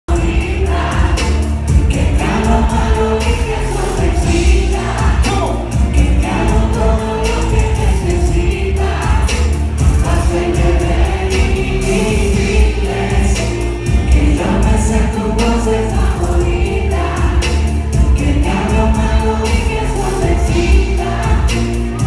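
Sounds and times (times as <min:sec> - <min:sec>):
crowd singing along: 0:00.0 - 0:22.0
live concert music with vocals: 0:00.0 - 0:22.0.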